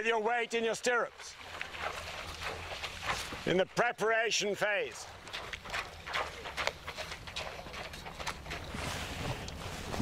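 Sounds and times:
hooves splashing in water: 0:00.0 - 0:10.0
horse hoofbeats: 0:00.0 - 0:10.0.

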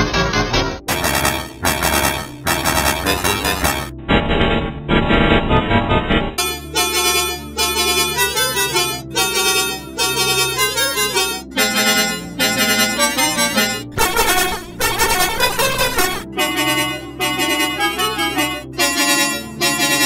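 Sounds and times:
bus air horn melody: 0:06.4 - 0:20.0.

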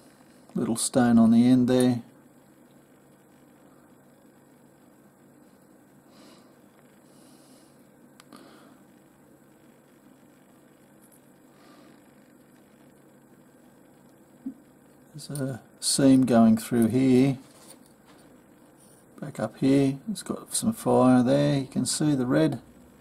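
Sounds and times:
soft handling of stone: 0:17.4 - 0:19.1.

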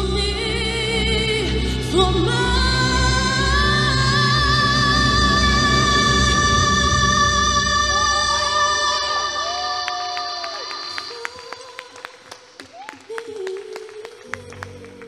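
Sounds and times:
sustained backing chord: 0:00.0 - 0:08.8
woman singing into microphone: 0:00.0 - 0:15.0
hand claps: 0:10.1 - 0:15.0.

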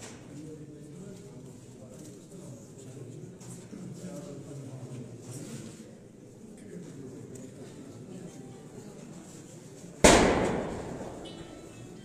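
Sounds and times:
loud bang with echo: 0:10.0 - 0:11.6.

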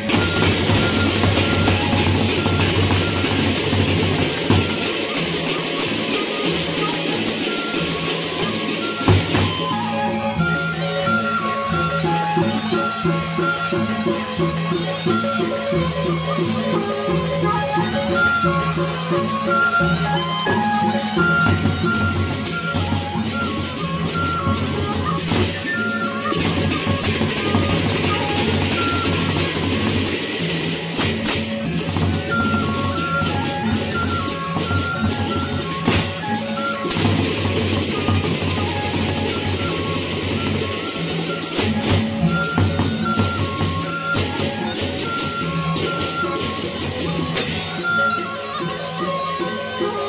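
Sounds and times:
barrel drums beaten with sticks: 0:00.0 - 0:05.1
hand cymbals clashing: 0:00.0 - 0:50.0
high melody line: 0:00.0 - 0:50.0.

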